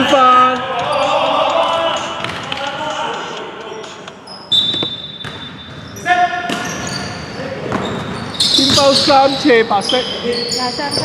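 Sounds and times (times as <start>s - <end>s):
players shouting: 0.0s - 4.0s
high whistle-like tone: 4.4s - 5.7s.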